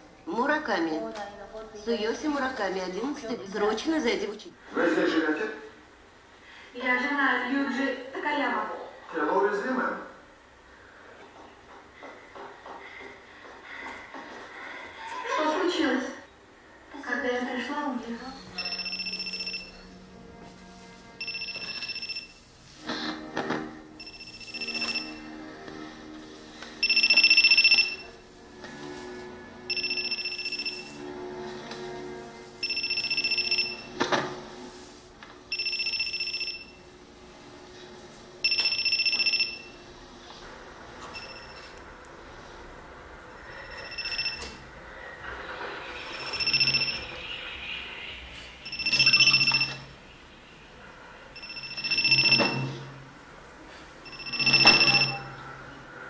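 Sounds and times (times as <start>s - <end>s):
background music: 17.9s - 42.1s
electronic telephone ringing: 18.4s - 20.2s, 21.1s - 22.5s, 23.2s - 25.8s, 26.8s - 28.2s, 29.7s - 31.4s, 32.0s - 34.3s, 35.4s - 36.9s, 38.4s - 39.8s, 41.0s - 41.8s, 43.5s - 44.7s, 46.1s - 47.2s, 48.6s - 50.0s, 51.3s - 53.1s, 54.0s - 55.6s.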